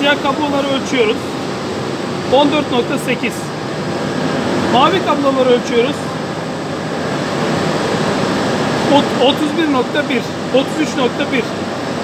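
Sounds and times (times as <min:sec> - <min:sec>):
steady rushing machinery noise: 0:00.0 - 0:12.0.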